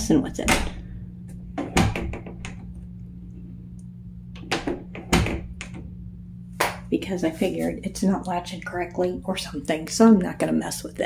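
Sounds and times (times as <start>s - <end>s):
door knocking against frame: 4.4s - 5.6s.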